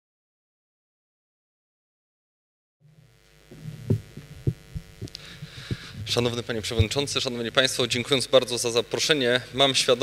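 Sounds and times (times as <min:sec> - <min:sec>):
low electrical hum: 0:02.8 - 0:10.0
microphone handling thumps: 0:02.9 - 0:07.4.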